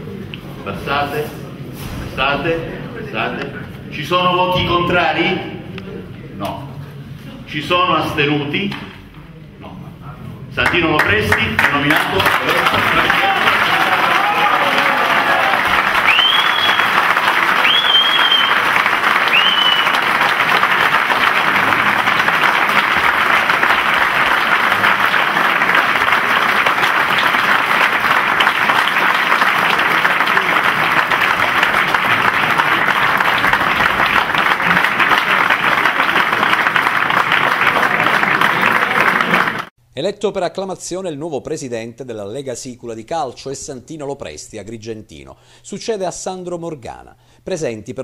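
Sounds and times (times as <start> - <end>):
audience applauding: 10.6 - 39.7
short rising whistles: 16.0 - 20.1.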